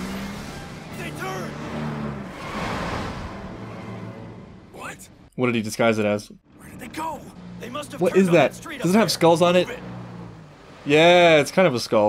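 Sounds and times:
car engine hum: 0:00.0 - 0:12.0.

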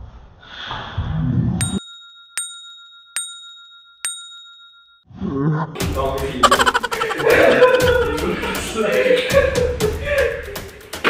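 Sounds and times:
bell chime dings: 0:01.6 - 0:05.1.

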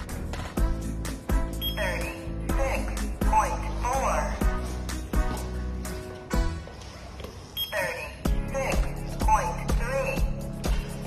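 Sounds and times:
background music with steady beat: 0:00.0 - 0:11.0
short high electronic beep: 0:01.6 - 0:02.2, 0:07.6 - 0:08.0.

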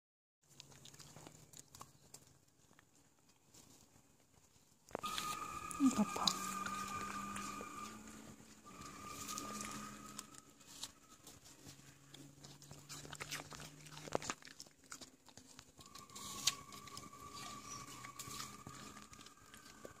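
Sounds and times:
dog chewing apple crunches: 0:00.4 - 0:20.0
faint steady tone: 0:05.0 - 0:13.0.

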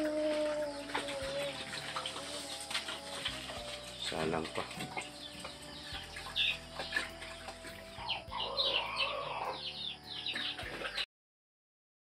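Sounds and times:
chickens clucking: 0:00.0 - 0:11.1.

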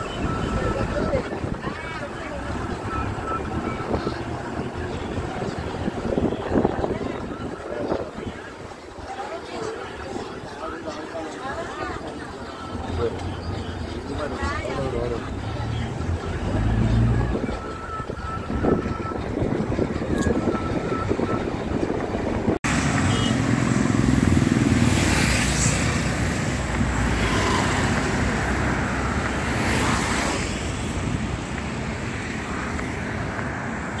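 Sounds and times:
wind noise on microphone: 0:00.0 - 0:09.1, 0:16.0 - 0:23.0
road traffic passing: 0:00.0 - 0:34.0.

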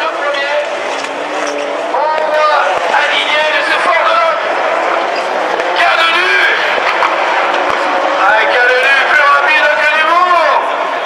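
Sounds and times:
racing car engines accelerating: 0:00.0 - 0:11.0.

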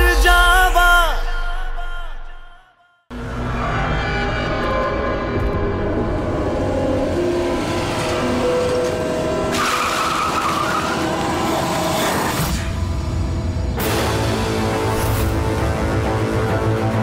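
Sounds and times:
dramatic background music: 0:03.1 - 0:17.0
tyres skidding through dirt: 0:06.8 - 0:12.4.

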